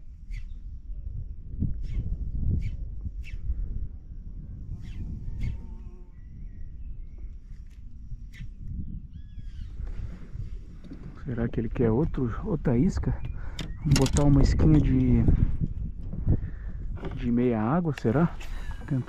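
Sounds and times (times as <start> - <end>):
wind rumble: 0.0 - 19.0
bird chirping: 0.3 - 0.6, 4.8 - 9.8, 11.4 - 16.3.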